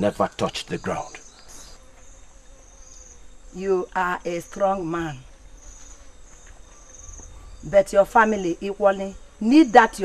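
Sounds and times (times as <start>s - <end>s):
faint low hum: 0.0s - 1.8s
insects chirring: 0.0s - 10.0s.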